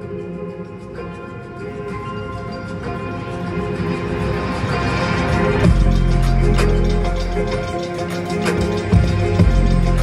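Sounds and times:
held synth chords: 0.0s - 10.0s
deep bass: 5.3s - 7.9s, 8.6s - 10.0s.

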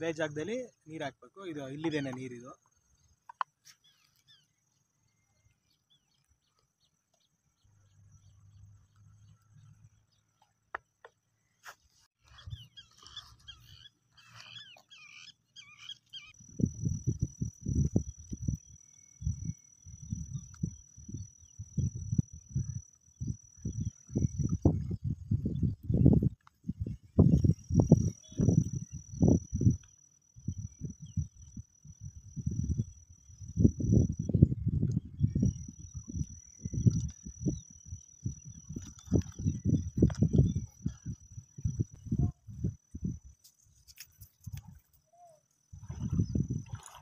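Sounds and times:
high-pitched insect whine: 12.4s - 47.0s
wind buffeting microphone: 16.5s - 43.4s, 45.7s - 47.0s.

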